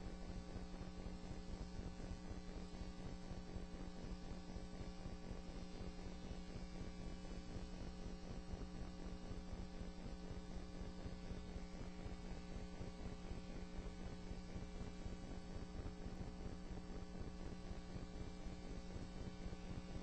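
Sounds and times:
electrical hum with hiss: 0.0 - 20.0.

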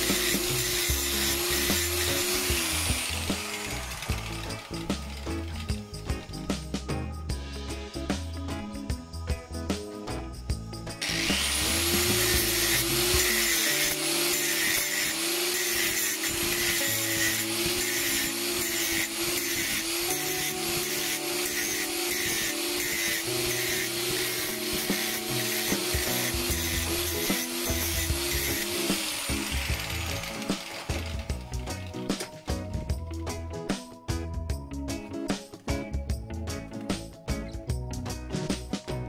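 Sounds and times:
angle grinder grinding metal: 0.0 - 6.6, 11.0 - 32.8.

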